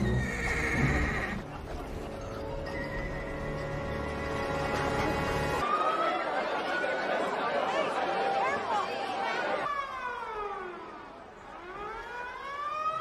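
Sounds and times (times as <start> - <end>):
horse whinnying: 0.0 - 1.4
film score with held notes: 0.0 - 5.6.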